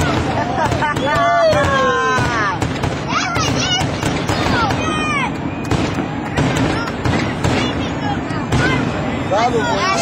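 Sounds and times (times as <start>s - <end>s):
fireworks bangs and crackles: 0.0s - 10.0s
voices: 0.0s - 10.0s.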